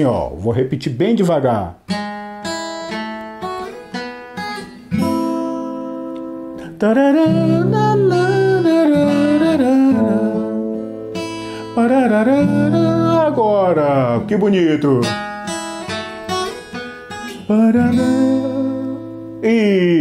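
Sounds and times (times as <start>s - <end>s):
acoustic guitar fingerpicked: 1.8s - 20.0s
person singing melody: 6.2s - 15.2s, 16.5s - 20.0s.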